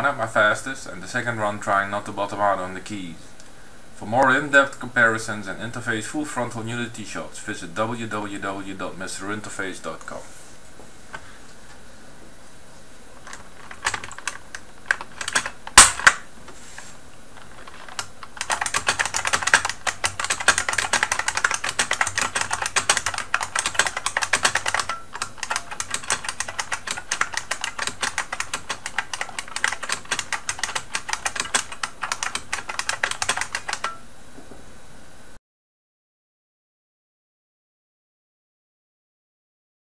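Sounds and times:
keyboard keys clicking: 13.2 - 16.2, 17.4 - 34.0.

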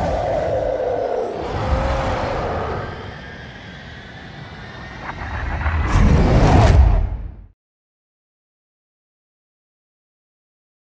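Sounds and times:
deep rumbling: 0.0 - 7.5
loud rush: 0.0 - 7.5.

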